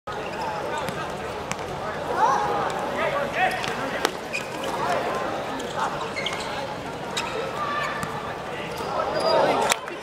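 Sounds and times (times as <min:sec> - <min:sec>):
voices of players and spectators: 0:00.1 - 0:10.0.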